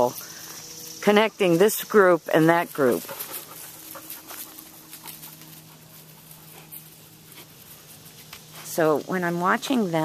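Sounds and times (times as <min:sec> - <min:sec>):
low steady hum: 0:00.0 - 0:10.0
dogs moving: 0:02.8 - 0:08.5
light ticks and scuffs: 0:02.9 - 0:09.8.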